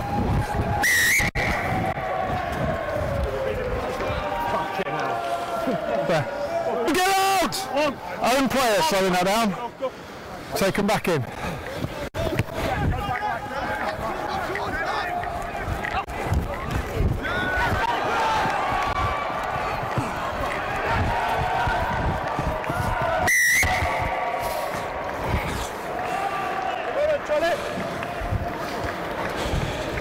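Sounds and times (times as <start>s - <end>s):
players shouting: 0.0s - 9.6s, 12.1s - 29.2s
referee's whistle trill: 0.8s - 1.6s, 23.2s - 23.9s.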